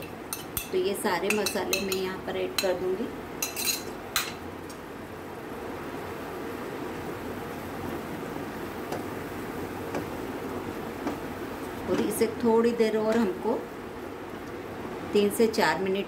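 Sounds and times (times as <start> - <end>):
spoon clinking against pan: 0.0 - 2.8, 3.4 - 4.4.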